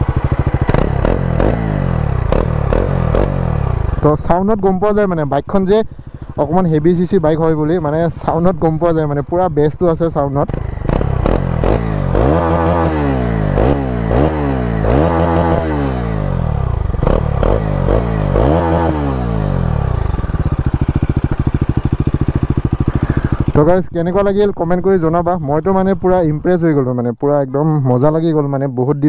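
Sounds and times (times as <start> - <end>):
motorcycle engine revving: 0.0 - 27.0.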